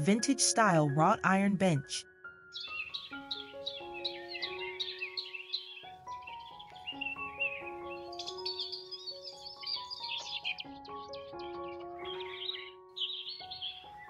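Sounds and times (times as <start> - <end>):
soft background music: 0.0 - 14.0
songbirds chirping: 0.0 - 14.0.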